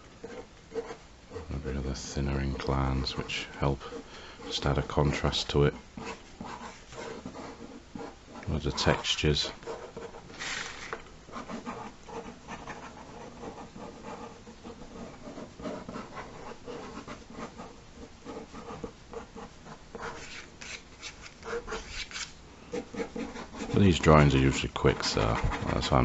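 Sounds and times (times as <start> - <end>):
pen scratching on paper: 0.2 - 1.9, 2.6 - 26.0.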